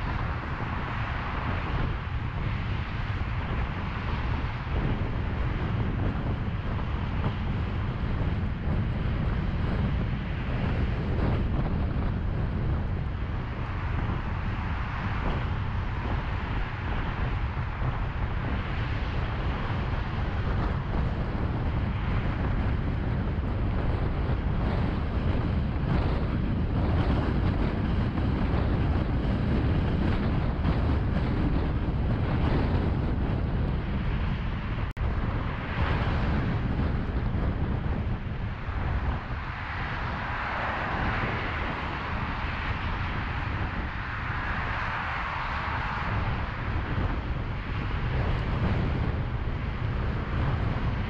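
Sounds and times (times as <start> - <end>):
freeway road noise from moving car: 0.0 - 51.0
low rumble: 0.0 - 51.0
tyre and wind noise: 0.0 - 51.0
wind buffeting on microphone: 0.0 - 51.0.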